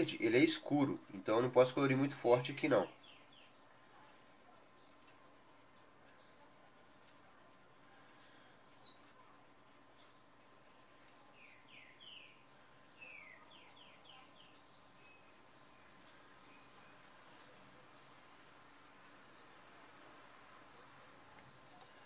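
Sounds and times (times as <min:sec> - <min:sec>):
pencil scratching on paper: 0:00.0 - 0:22.0
bird chirps: 0:02.8 - 0:03.6, 0:08.7 - 0:09.1, 0:11.2 - 0:17.1.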